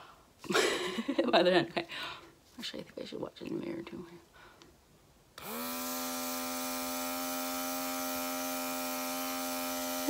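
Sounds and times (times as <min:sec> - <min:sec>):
airbrush motor humming: 0:05.4 - 0:10.0.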